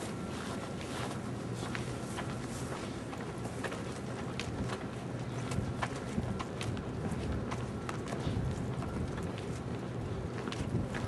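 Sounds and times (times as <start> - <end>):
footsteps on pavement: 0.0 - 11.0
wind buffeting microphone: 1.5 - 11.0.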